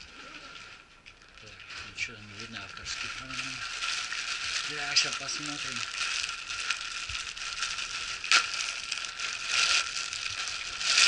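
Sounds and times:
plastic mailer bag crinkling and tearing: 0.0 - 11.0.

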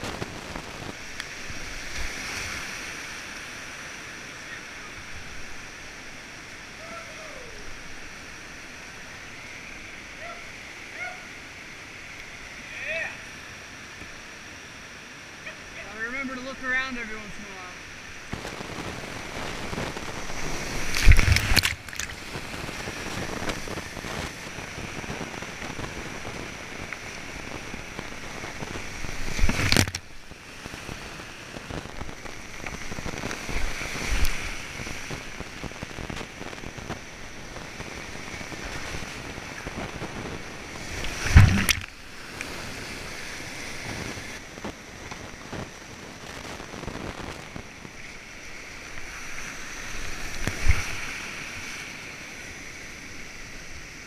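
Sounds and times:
rushing river whitewater: 0.0 - 54.0
loud splashing surges: 40.8 - 42.2.

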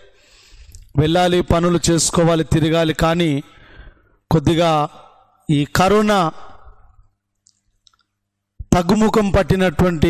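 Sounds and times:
man's voice with room echo: 0.0 - 10.0.

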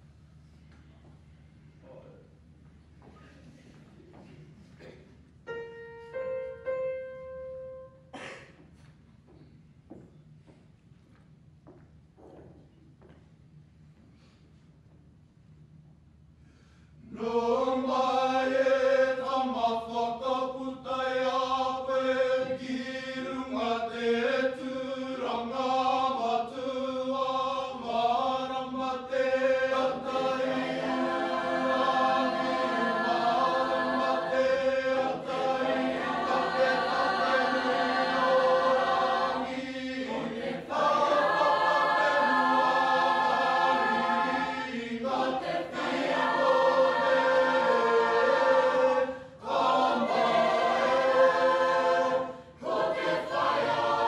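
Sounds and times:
choir singing: 17.1 - 54.0.

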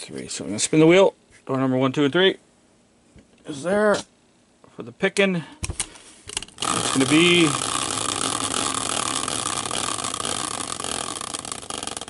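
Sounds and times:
caster wheel whirring and ticking: 6.4 - 12.0.

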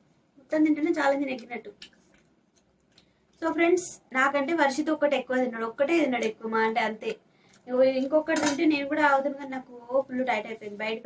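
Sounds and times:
person talking: 0.4 - 1.9, 3.4 - 11.0
metal plate clink: 8.3 - 8.7.

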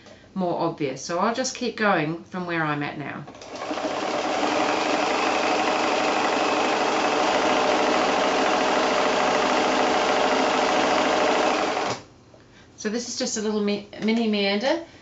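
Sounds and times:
sewing machine running fast: 3.4 - 12.0.

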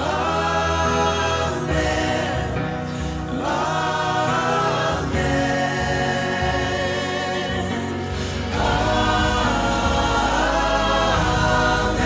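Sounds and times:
mixed choir singing: 0.0 - 12.0.

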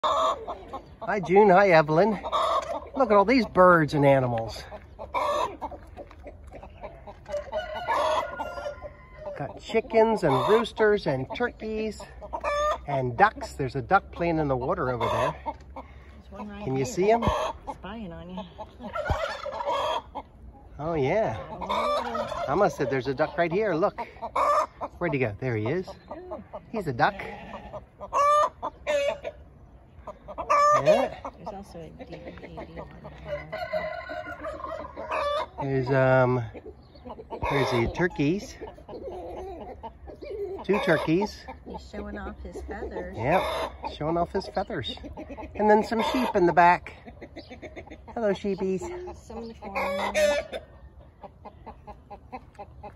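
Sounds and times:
roosters crowing: 0.0 - 5.8, 6.6 - 13.5, 14.2 - 17.8, 18.4 - 20.3, 20.9 - 24.9, 25.5 - 29.4, 30.1 - 31.4, 32.5 - 41.6, 49.6 - 50.9
chickens clucking: 0.0 - 52.9
rooster crowing: 7.3 - 9.5, 33.3 - 34.9.

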